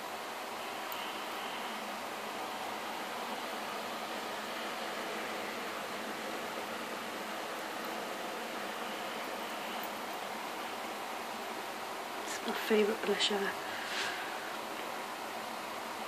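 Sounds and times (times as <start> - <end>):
microphone hiss: 0.0 - 16.0.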